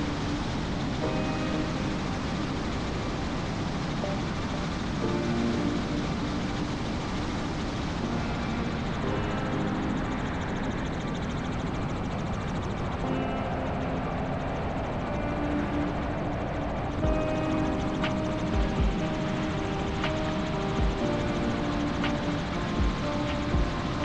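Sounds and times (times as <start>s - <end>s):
faint tune: 0.0s - 24.0s
helicopter in flight: 0.0s - 24.0s.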